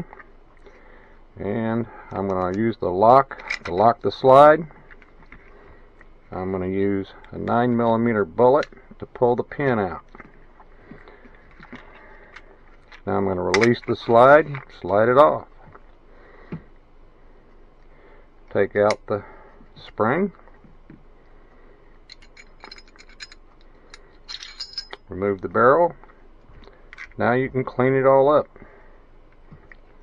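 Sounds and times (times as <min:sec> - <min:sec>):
small metal clicks: 0:22.1 - 0:25.1.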